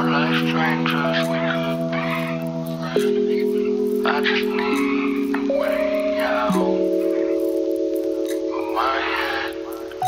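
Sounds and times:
lo-fi hip-hop beat: 0:00.0 - 0:10.0.

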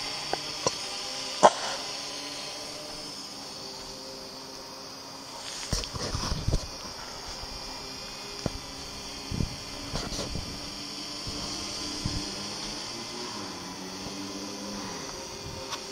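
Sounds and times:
drone rotors whining: 0:00.0 - 0:15.9.

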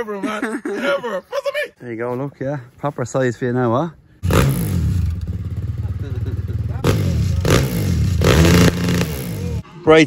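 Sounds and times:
dirt bike engine revving: 0:04.2 - 0:09.6.

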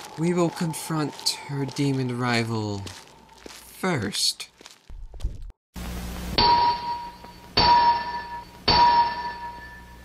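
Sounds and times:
ringing metallic clangs: 0:06.4 - 0:10.0.

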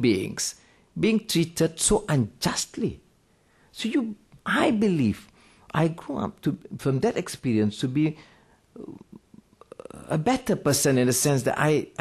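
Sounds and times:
man speaking into microphone: 0:00.0 - 0:03.0, 0:03.7 - 0:08.2, 0:08.8 - 0:12.0
faint breath: 0:03.3 - 0:03.7, 0:08.2 - 0:08.7.

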